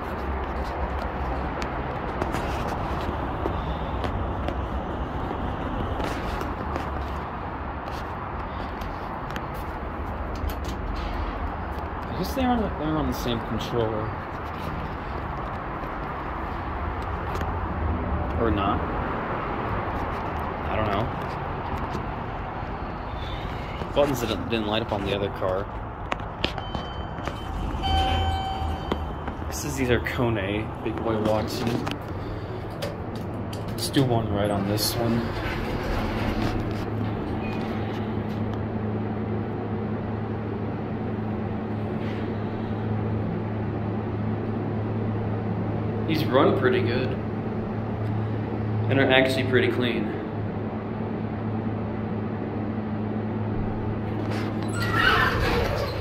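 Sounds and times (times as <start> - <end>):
elevator door and cab noise: 9.8 - 12.7, 20.7 - 39.1, 53.5 - 56.0
elevator machinery humming: 26.4 - 46.0.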